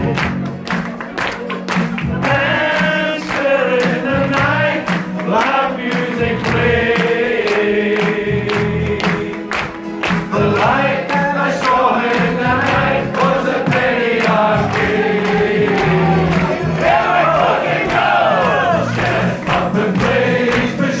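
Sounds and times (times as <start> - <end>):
hand claps keeping time: 0.0 - 21.0
crowd singing along: 2.2 - 21.0.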